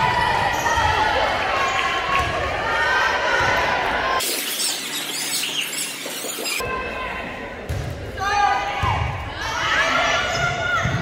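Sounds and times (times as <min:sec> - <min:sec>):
voices calling out in gym: 0:00.0 - 0:07.5.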